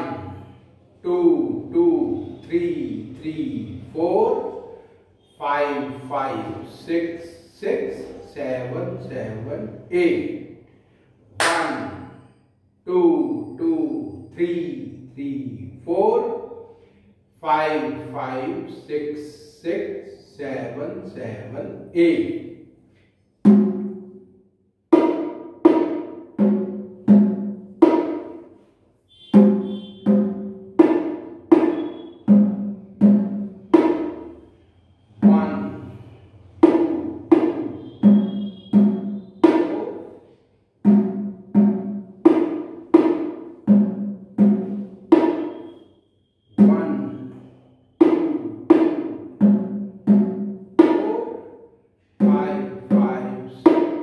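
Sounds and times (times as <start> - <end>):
bongos played by hand: 23.4 - 24.2, 24.9 - 34.4, 36.6 - 45.8, 48.0 - 51.5, 52.2 - 54.0.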